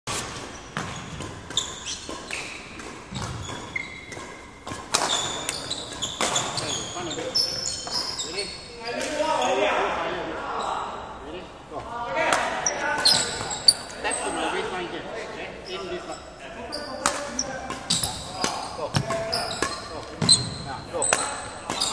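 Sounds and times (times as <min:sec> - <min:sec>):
rackets striking shuttlecocks: 0:00.1 - 0:08.2, 0:17.0 - 0:21.9
shoes squeaking on wooden floor: 0:00.1 - 0:09.7, 0:12.7 - 0:14.3, 0:15.6 - 0:21.9.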